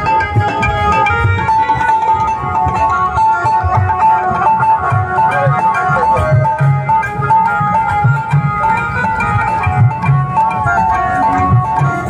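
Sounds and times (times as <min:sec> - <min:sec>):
barrel drums beating: 0:00.0 - 0:12.0
high melody line: 0:00.0 - 0:12.0.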